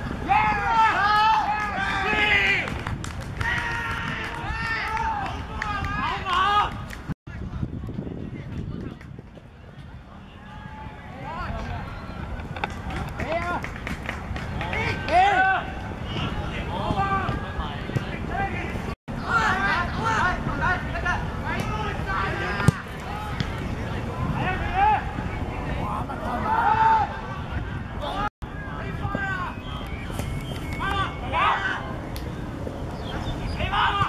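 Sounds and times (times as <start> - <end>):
open-air field noise: 0.0 - 34.0
people shouting: 33.6 - 34.0.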